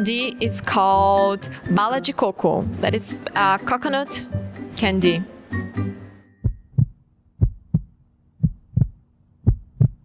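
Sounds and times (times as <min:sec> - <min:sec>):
heartbeat thumps: 0:06.4 - 0:10.0.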